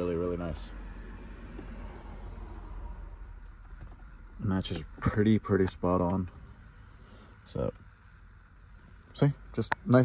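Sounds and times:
low background rumble: 0.0s - 10.0s
faint hiss: 2.1s - 10.0s.

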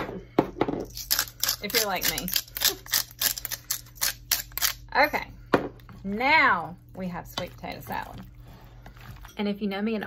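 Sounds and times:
spice mill grinding: 0.8s - 4.9s.

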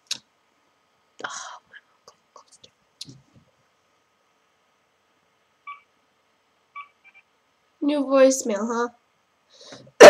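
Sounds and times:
phone keypad beeps: 5.7s - 5.9s, 6.8s - 7.2s.

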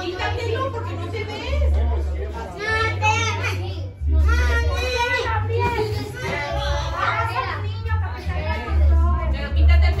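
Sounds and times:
children talking: 0.0s - 10.0s.

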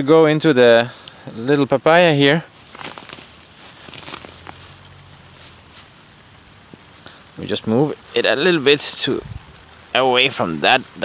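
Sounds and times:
leaves rustling and crackling: 0.0s - 11.0s.

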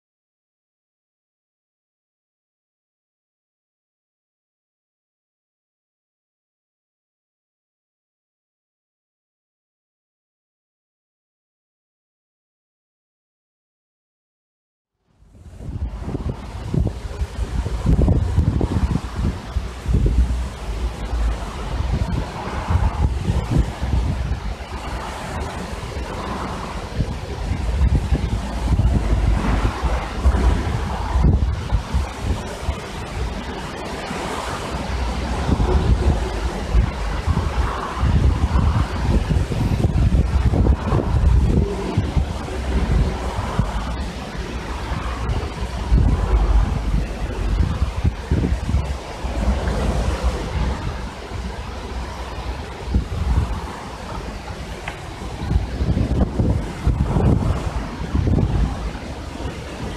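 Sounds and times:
wind rushing through trees: 15.0s - 59.9s
wind buffeting microphone: 15.2s - 59.9s.

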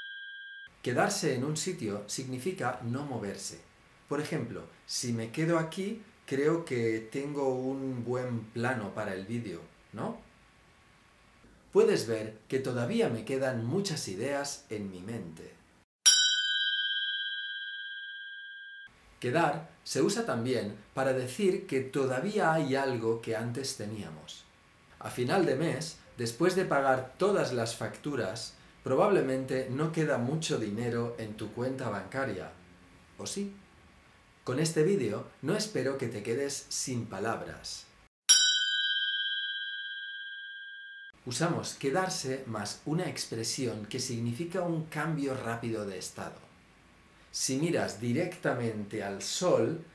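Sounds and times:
bell-like ding ringing: 0.0s - 0.7s, 16.1s - 18.9s, 38.3s - 41.2s.

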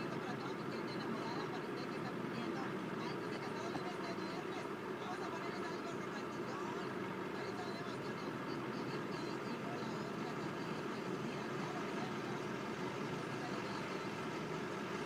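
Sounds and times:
vehicle engine running: 0.0s - 15.0s.

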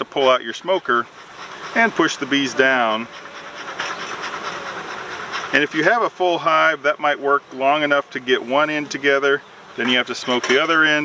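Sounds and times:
honeybees buzzing: 0.1s - 11.0s.

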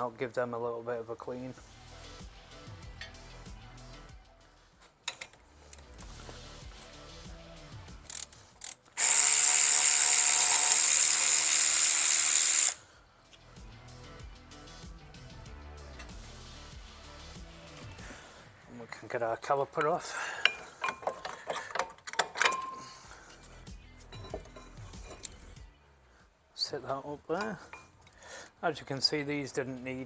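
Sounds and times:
power ratchet running: 8.0s - 12.8s.

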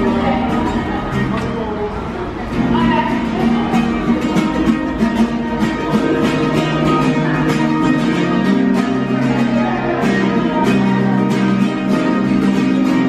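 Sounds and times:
acoustic guitar playing: 0.0s - 13.0s.

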